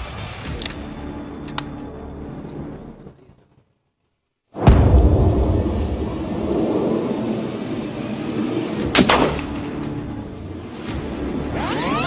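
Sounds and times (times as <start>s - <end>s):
steady background noise: 4.6s - 12.0s
rifle shot with echo: 8.9s - 9.6s.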